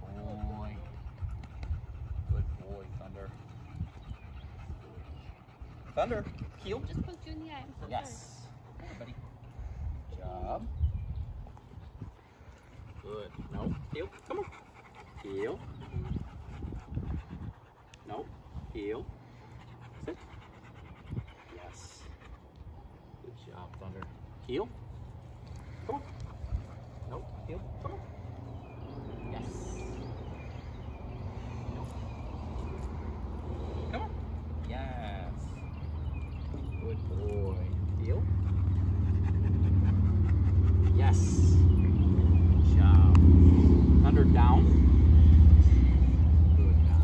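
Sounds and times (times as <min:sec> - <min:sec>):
dog panting: 0:00.0 - 0:47.0
vehicle engine rumble: 0:00.0 - 0:47.0.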